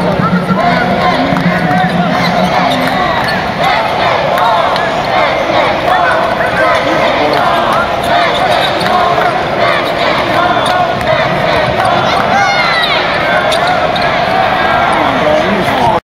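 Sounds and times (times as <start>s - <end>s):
crowd chatter in arena: 0.0s - 16.0s
sneakers squeaking on floor: 7.3s - 9.0s, 12.8s - 14.4s.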